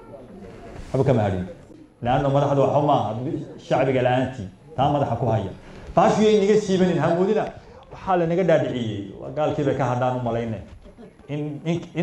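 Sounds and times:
man speaking: 0.9 - 12.0.

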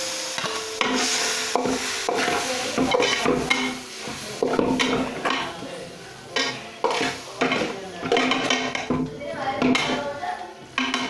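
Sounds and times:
oil sizzling: 0.0 - 11.0.

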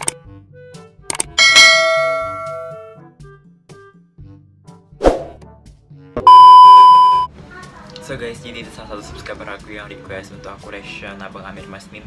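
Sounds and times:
notification bell ding: 1.4 - 2.8, 6.2 - 7.3.

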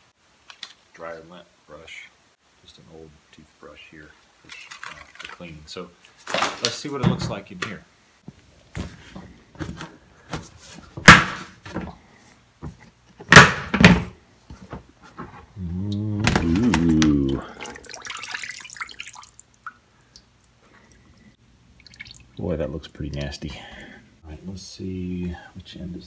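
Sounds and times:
man humming: 15.6 - 17.8.

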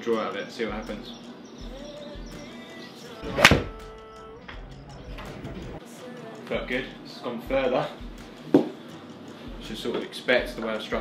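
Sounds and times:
background music: 0.0 - 11.0
golf club hitting ball: 3.2 - 3.8.

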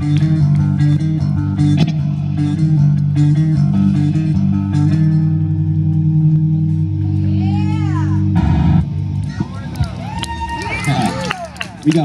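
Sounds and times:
distorted electric guitars and bass: 0.0 - 12.0
guitar squeals: 7.2 - 10.1.

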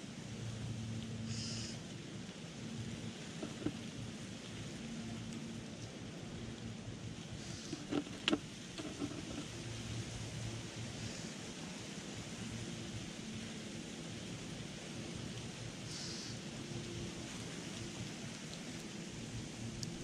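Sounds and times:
faint low hum: 0.0 - 20.0
rushing hiss: 15.8 - 16.4.

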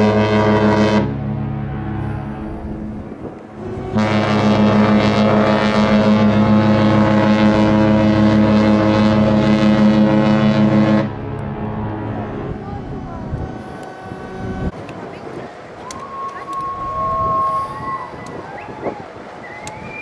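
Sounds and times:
ship horn blast: 0.0 - 14.8.

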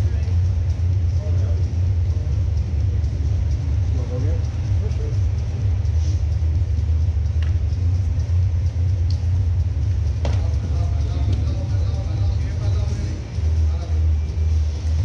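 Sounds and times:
steady low rumble: 0.0 - 15.0
faint voices: 10.1 - 15.0
sharp slap: 10.2 - 10.5.

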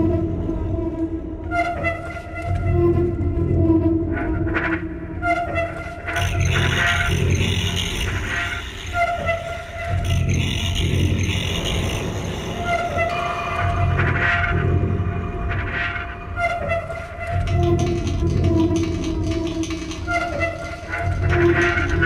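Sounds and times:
industrial noise music: 0.0 - 22.0.

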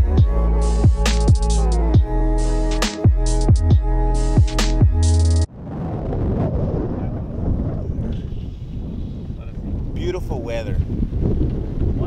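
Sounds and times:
electronic music with heavy beat: 0.0 - 5.5
wind buffeting microphone: 5.5 - 12.0.

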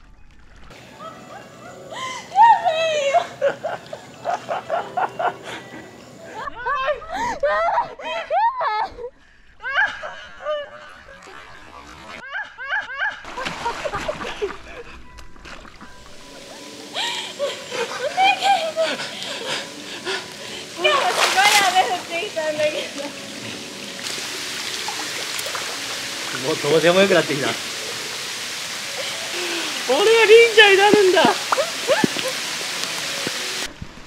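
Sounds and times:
pond water sloshing: 3.3 - 5.2, 13.3 - 34.0
high-pitched squealing laughter: 6.4 - 13.3.

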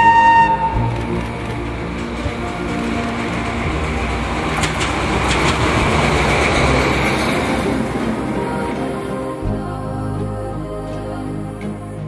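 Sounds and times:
wheels clicking over rails: 0.0 - 10.2
locomotive passing: 0.0 - 12.0.

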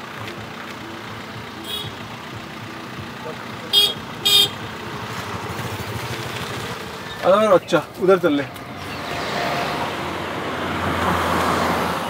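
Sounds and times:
vehicle engine running: 0.0 - 12.0
car horn toots: 1.6 - 2.0, 3.7 - 4.7.

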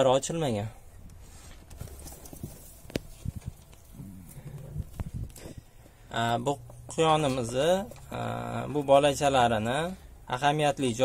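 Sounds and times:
faint low murmur: 0.4 - 11.0.

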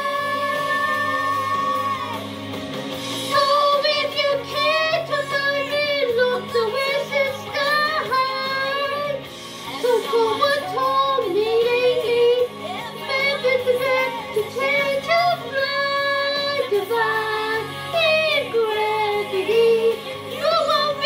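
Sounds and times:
woman singing: 0.0 - 2.1, 3.3 - 21.0
backing music: 0.0 - 21.0.

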